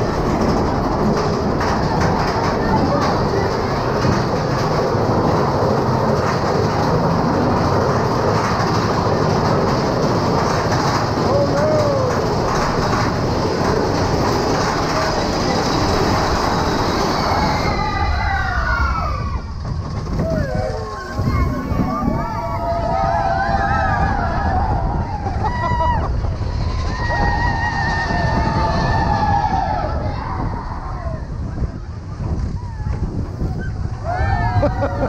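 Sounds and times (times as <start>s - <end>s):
riders whooping: 0.0s - 35.0s
roller coaster rumbling and clattering: 0.0s - 35.0s.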